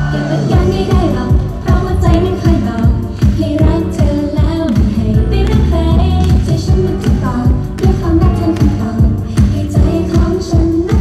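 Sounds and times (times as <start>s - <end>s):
pop song with drum beat: 0.0s - 11.0s
women singing into microphones: 0.0s - 11.0s.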